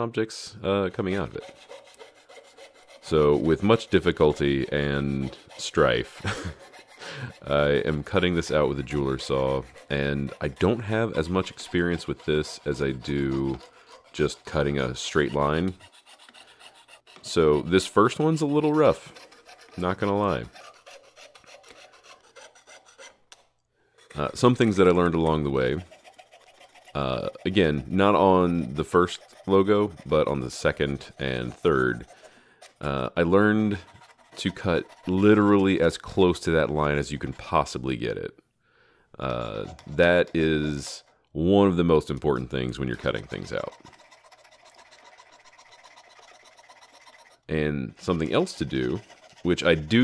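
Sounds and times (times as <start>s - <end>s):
saw blade rasping through metal: 1.1s - 23.2s, 24.0s - 37.8s, 39.4s - 41.1s, 41.9s - 50.0s.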